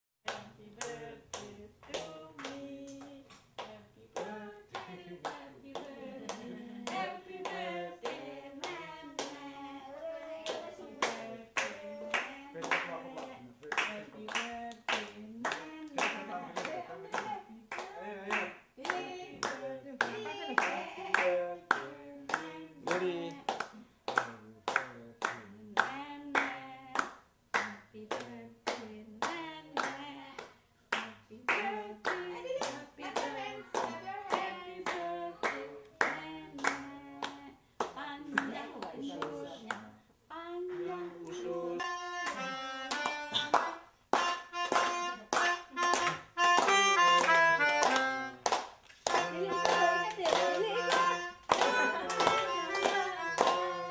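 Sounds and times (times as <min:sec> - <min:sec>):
people clapping in a steady beat: 0:00.2 - 0:09.6, 0:10.3 - 0:39.9, 0:41.9 - 0:53.9
group singing: 0:00.3 - 0:43.8, 0:49.0 - 0:53.9.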